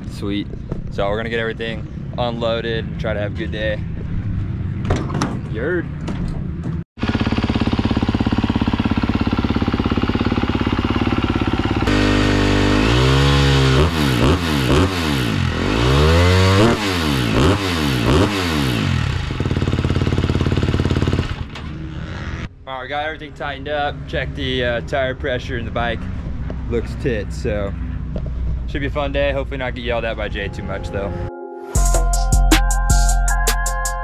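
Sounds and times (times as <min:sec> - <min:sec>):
motorcycle engine idling and revving: 0:00.0 - 0:22.6, 0:23.8 - 0:29.5.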